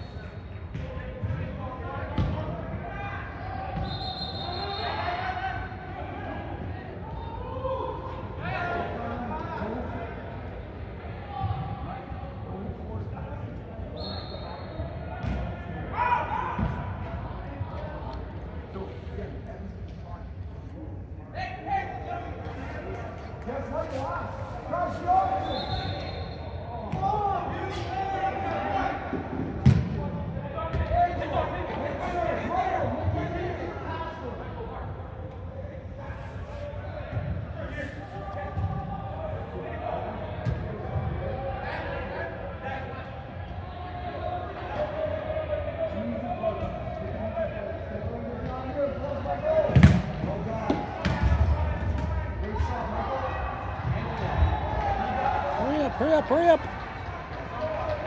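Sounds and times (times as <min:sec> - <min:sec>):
soccer ball impacts echoing: 0:00.6 - 0:02.9, 0:15.1 - 0:15.8, 0:29.4 - 0:31.0, 0:38.4 - 0:39.0, 0:49.6 - 0:52.7
soccer ball being kicked: 0:49.7 - 0:50.2
players shouting: 0:53.2 - 0:58.0.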